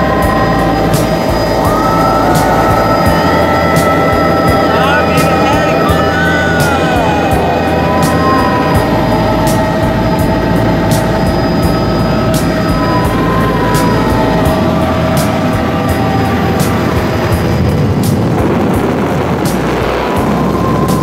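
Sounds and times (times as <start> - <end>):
helicopter engine and rotor drone: 0.0 - 21.0.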